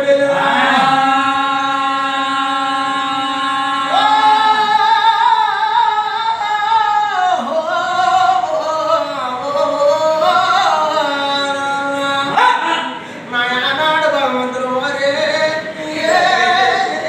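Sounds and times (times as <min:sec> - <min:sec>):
man singing unaccompanied: 0:00.0 - 0:17.0.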